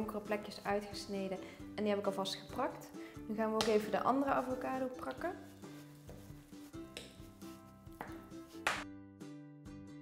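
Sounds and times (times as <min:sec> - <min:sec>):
soft background music: 0:00.0 - 0:10.0
fork mashing on cutting board: 0:05.4 - 0:08.8.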